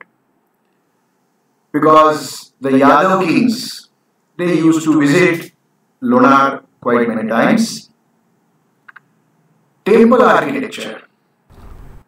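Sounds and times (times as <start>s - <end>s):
man speaking: 1.8s - 8.0s, 9.8s - 11.1s.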